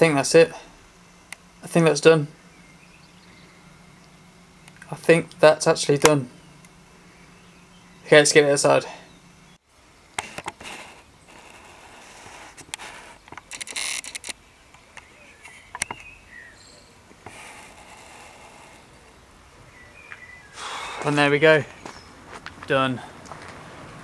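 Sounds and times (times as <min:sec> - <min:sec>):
sharp clicks: 0:04.0 - 0:05.4, 0:12.5 - 0:16.1.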